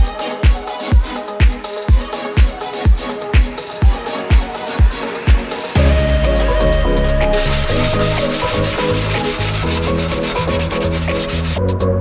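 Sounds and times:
electronic music: 0.0s - 12.0s
sanding block rasping on filler: 7.3s - 11.6s.

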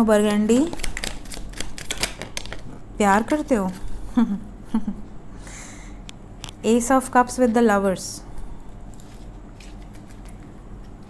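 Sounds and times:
cards being shuffled: 0.3s - 3.9s, 9.0s - 11.0s.

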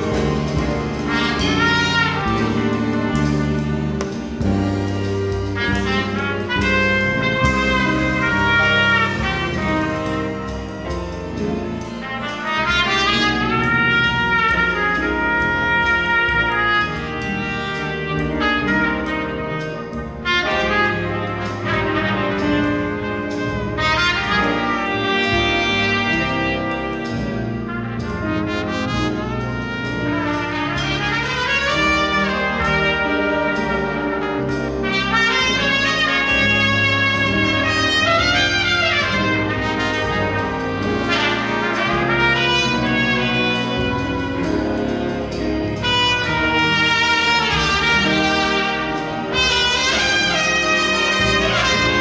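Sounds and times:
jazz big band playing: 0.0s - 52.0s
steady cymbal beat: 0.0s - 52.0s
trumpets and trombones: 0.0s - 52.0s.

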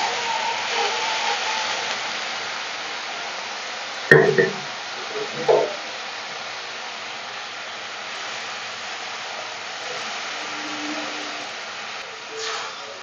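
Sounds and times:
masala sizzling in hot oil: 0.0s - 13.0s.

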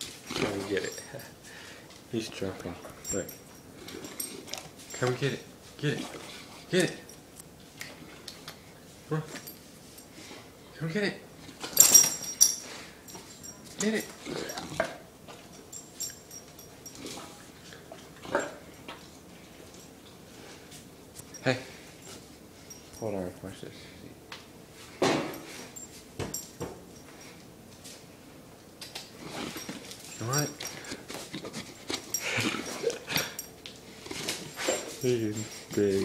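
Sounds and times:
dogs scuffling: 29.0s - 36.0s.

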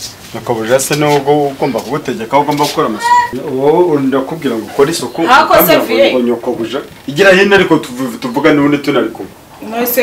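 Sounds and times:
people talking: 0.3s - 10.0s.

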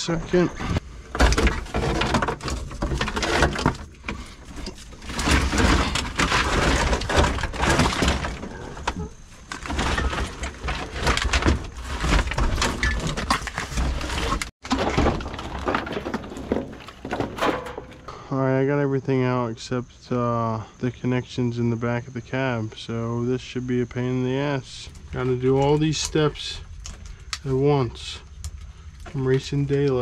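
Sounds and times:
wires scraping and clattering on metal: 0.3s - 14.5s.

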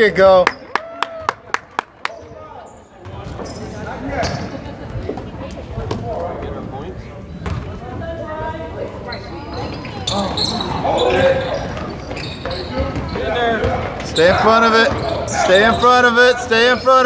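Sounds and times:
basketball bouncing on wood floor: 7.4s - 7.6s.

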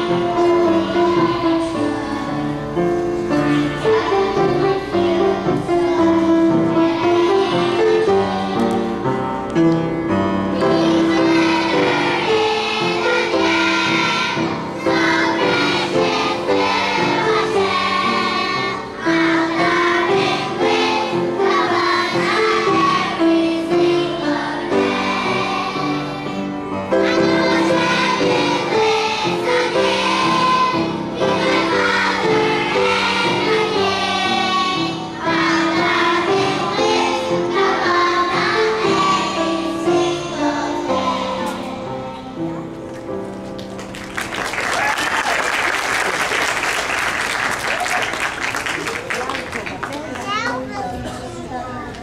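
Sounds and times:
children's song with music: 0.0s - 44.5s
audience applause: 43.6s - 50.6s
children's voices and chatter: 48.9s - 52.0s.

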